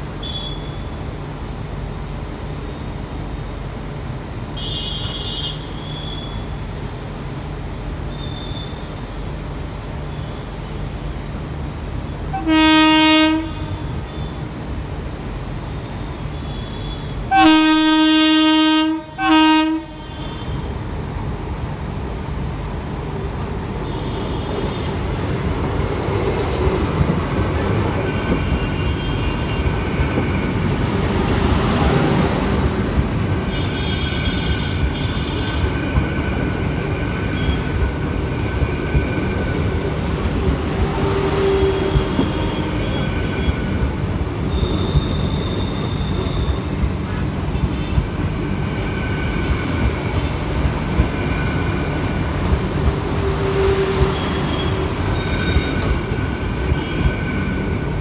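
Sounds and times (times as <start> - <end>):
train coaches rumbling past: 0.0 - 58.0
train horn blasts: 4.6 - 6.4, 12.3 - 14.4, 16.3 - 20.7, 33.5 - 35.6, 40.8 - 43.8, 44.4 - 46.6, 52.9 - 57.4.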